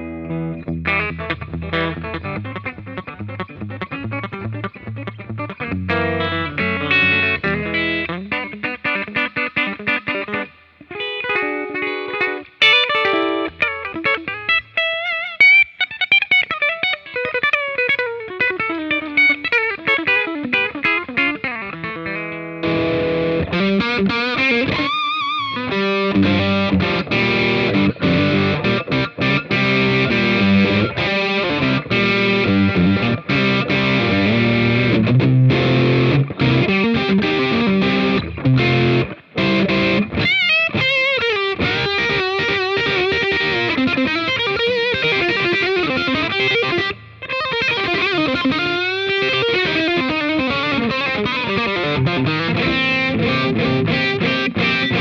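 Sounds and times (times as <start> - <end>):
electric guitar through amplifier: 0.0 - 55.0.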